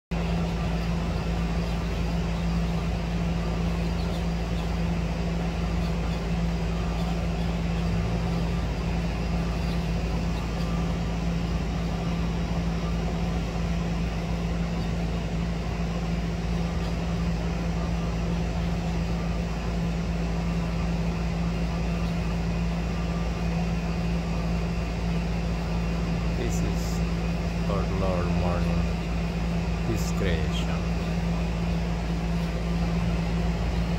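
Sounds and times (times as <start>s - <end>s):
mechanical hum with hiss: 0.1s - 33.9s.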